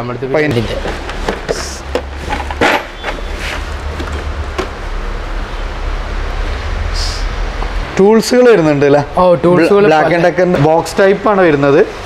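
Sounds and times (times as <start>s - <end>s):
steady low rumble: 3.6s - 10.5s.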